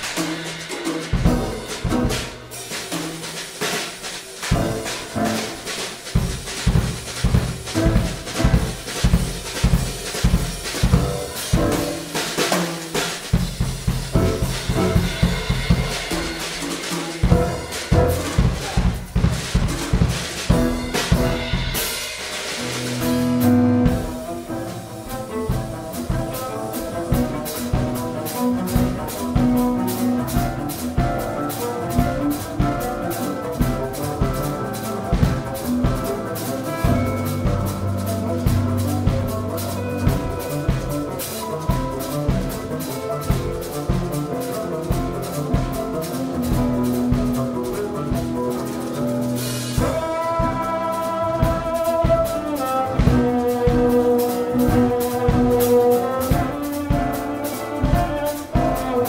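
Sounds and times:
drum kit rhythm: 0:00.0 - 0:59.0
cello bass line: 0:14.0 - 0:16.4, 0:22.7 - 0:59.0.

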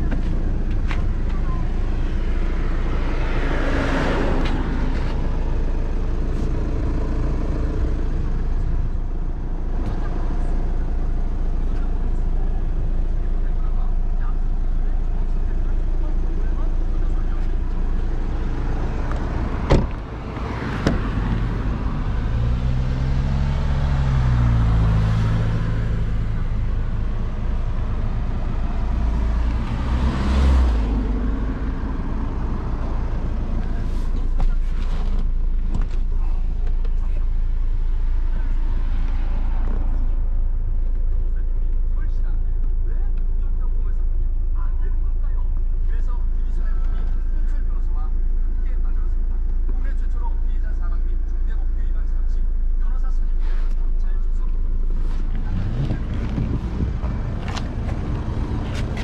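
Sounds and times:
low vehicle rumble: 0:00.0 - 0:59.0.

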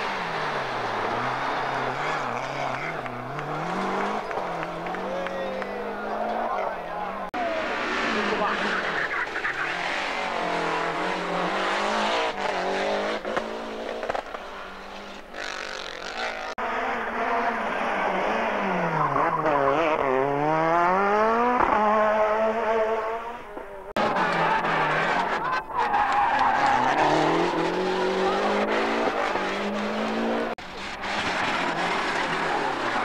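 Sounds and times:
rally car engine revving hard: 0:00.0 - 0:05.1, 0:09.6 - 0:15.0, 0:16.1 - 0:25.4, 0:26.5 - 0:33.0.

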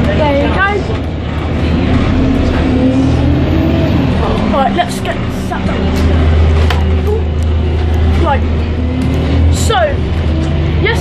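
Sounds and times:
bus engine drone: 0:00.0 - 0:11.0
road rumble: 0:00.0 - 0:11.0.

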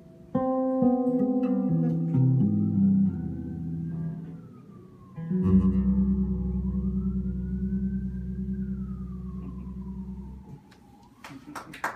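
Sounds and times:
electric bass chord ringing: 0:00.0 - 0:10.6.

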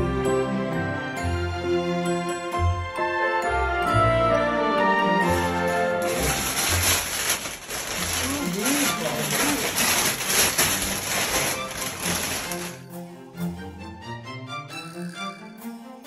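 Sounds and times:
background music: 0:00.0 - 0:16.0
paper bags rustling and crinkling: 0:05.4 - 0:12.9.

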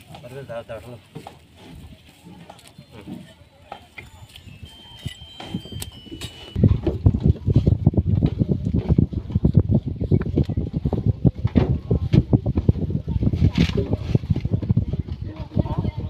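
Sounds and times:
wind buffeting microphone: 0:04.4 - 0:16.0.

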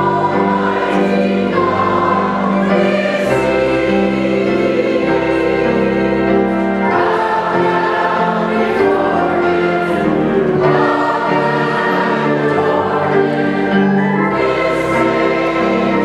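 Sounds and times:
choir and congregation singing hymn: 0:00.0 - 0:16.0
piano accompaniment: 0:00.0 - 0:16.0.

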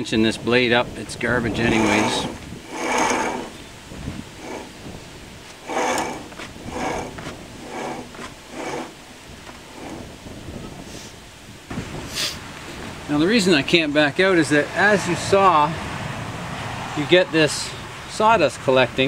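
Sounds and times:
bandsaw blade scraping: 0:01.5 - 0:10.2.

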